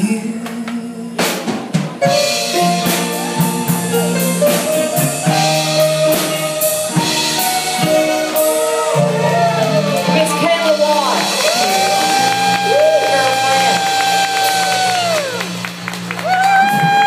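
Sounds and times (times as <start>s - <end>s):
live band playing: 0.1s - 17.0s
drum fill: 1.2s - 17.0s.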